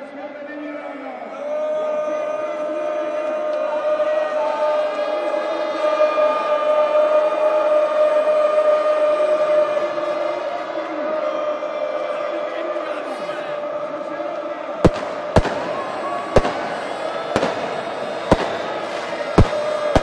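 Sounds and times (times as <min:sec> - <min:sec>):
stadium crowd chanting and singing: 0:00.0 - 0:20.0.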